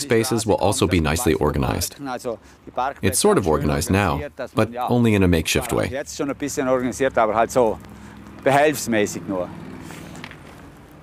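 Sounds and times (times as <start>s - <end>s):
man speaking: 0.0s - 7.8s.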